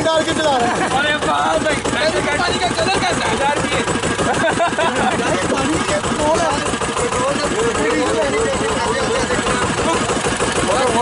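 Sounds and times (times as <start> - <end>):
motorboat engine running: 0.0 - 11.0
people talking: 0.0 - 11.0.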